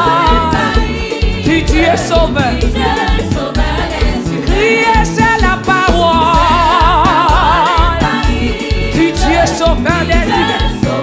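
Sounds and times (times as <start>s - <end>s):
woman singing with vibrato: 0.0s - 3.4s, 4.4s - 11.0s
band playing bass beat: 0.0s - 11.0s
congregation singing: 0.0s - 11.0s.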